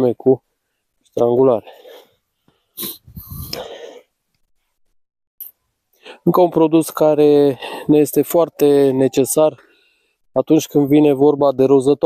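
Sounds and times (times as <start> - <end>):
breathy exhale: 2.7 - 4.1
person sniffing: 2.7 - 4.1.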